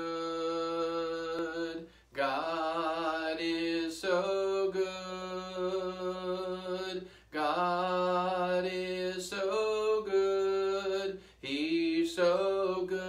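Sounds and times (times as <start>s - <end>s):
man singing a hymn unaccompanied: 0.0s - 13.0s.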